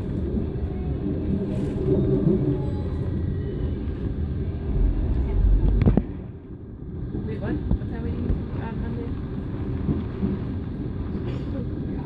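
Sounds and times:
moving train rumble: 0.0s - 12.0s.

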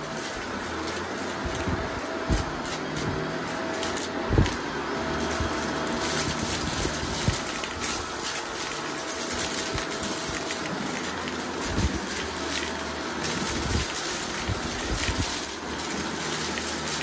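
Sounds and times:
vacuum cleaner running on carpet: 0.0s - 17.0s.

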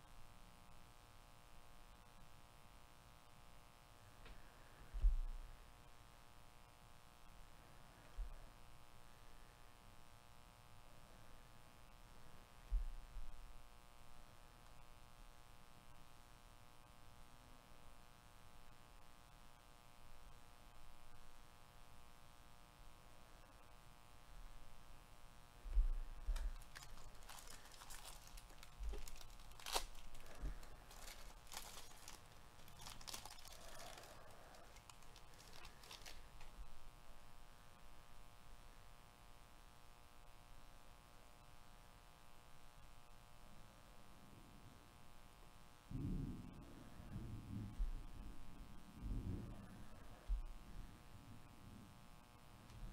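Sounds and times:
foil wrappers crinkling: 26.2s - 36.7s.

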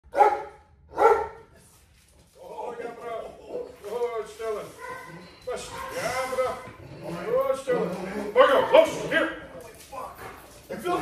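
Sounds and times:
dog barking: 0.1s - 1.5s, 4.7s - 6.5s.

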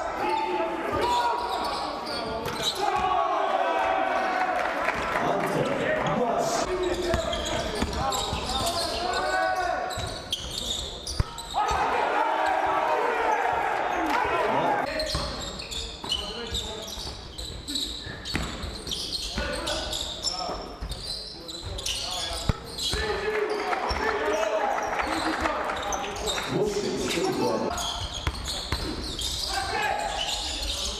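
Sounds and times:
people shouting: 11.6s - 14.9s.

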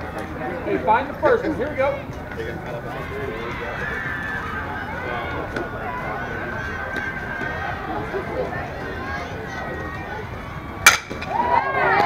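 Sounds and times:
faint voices calling and chattering: 0.0s - 12.0s
low outdoor background noise: 0.0s - 12.0s.

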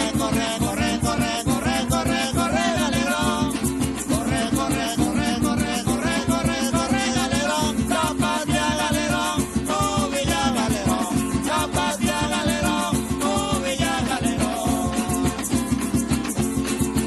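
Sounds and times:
person singing: 0.0s - 15.6s
shaken percussion: 0.0s - 17.0s.

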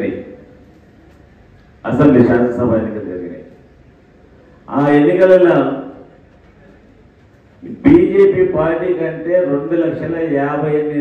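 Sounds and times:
man speaking over loudspeaker: 0.0s - 0.4s, 1.8s - 3.5s, 4.7s - 6.1s, 7.6s - 11.0s
faint hall background: 0.0s - 11.0s.

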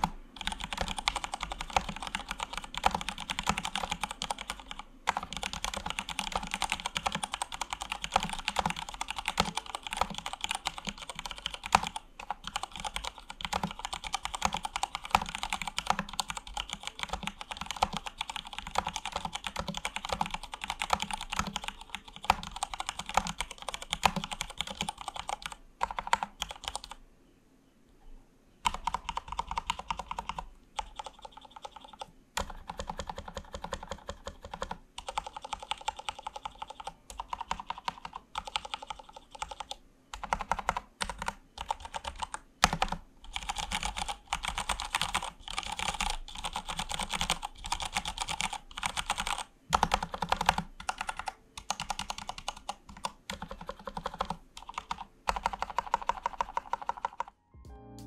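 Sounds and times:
mechanical keyboard typing: 0.0s - 27.0s, 28.6s - 57.4s.

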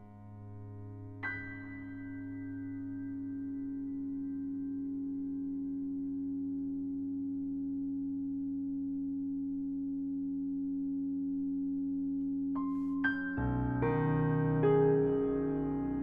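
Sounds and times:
sustained piano string drone: 0.0s - 8.6s, 12.6s - 16.0s.

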